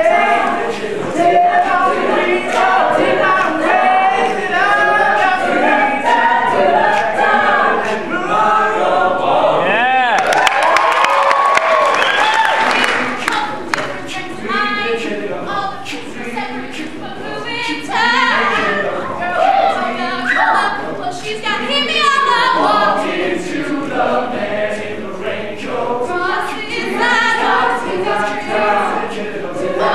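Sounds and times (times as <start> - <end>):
choir singing a cappella: 0.0 - 10.0, 11.7 - 29.9.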